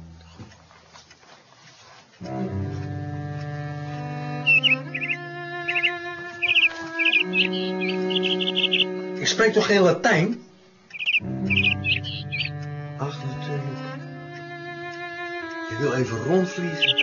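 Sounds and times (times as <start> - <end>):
cello playing slow low notes: 0.0 - 0.8, 2.2 - 17.0
small bird chirping: 4.0 - 9.8, 10.4 - 12.8, 16.0 - 17.0.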